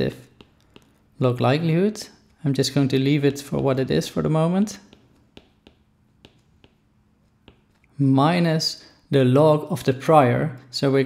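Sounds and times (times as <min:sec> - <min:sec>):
stylus tapping on tablet screen: 0:00.3 - 0:01.0, 0:04.7 - 0:07.9.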